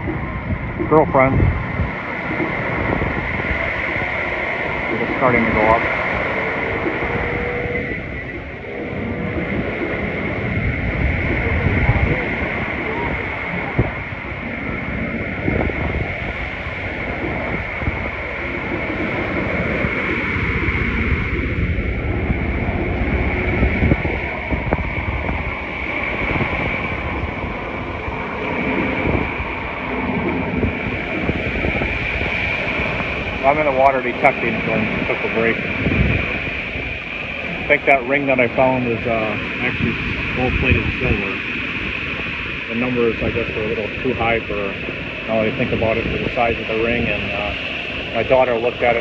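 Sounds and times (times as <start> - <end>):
small waves washing ashore: 0.0 - 49.0
steady rush of noise: 0.0 - 49.0
faint voices: 0.8 - 1.4, 3.5 - 16.2, 33.4 - 35.8, 37.2 - 41.4, 42.6 - 49.0.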